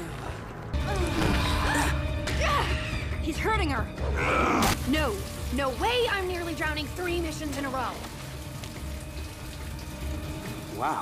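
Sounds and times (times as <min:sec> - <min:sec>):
water pouring and splashing: 0:04.6 - 0:11.0.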